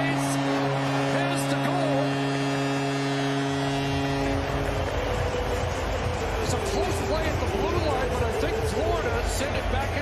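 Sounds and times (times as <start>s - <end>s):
crowd cheering: 0.0s - 10.0s
goal horn blaring: 0.0s - 10.0s.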